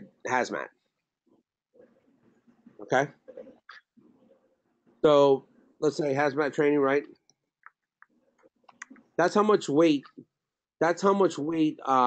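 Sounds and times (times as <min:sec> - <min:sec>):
man talking: 0:00.0 - 0:00.7, 0:02.8 - 0:03.5, 0:05.0 - 0:07.1, 0:09.2 - 0:10.2, 0:10.8 - 0:12.0
faint low background sounds: 0:00.0 - 0:00.8, 0:01.8 - 0:12.0.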